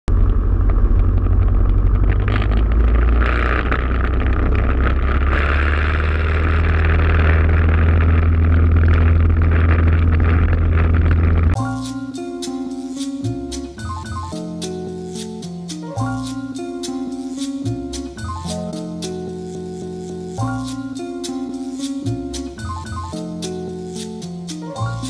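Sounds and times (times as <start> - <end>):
plucked-string music: 7.2 - 25.0.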